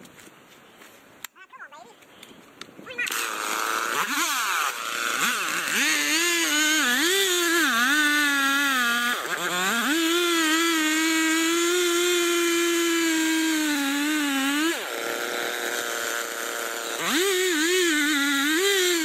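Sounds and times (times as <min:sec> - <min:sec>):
chainsaw revving: 0:02.9 - 0:19.0
chainsaw cutting through tree trunk: 0:03.0 - 0:19.0.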